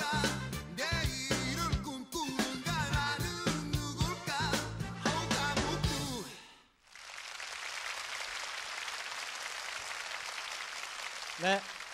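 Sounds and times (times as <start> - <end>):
song music: 0.0 - 6.3
audience applauding: 6.8 - 11.9.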